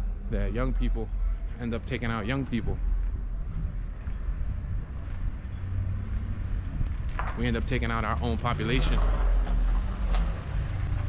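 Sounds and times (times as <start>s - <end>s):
city street rumble: 0.0s - 11.0s.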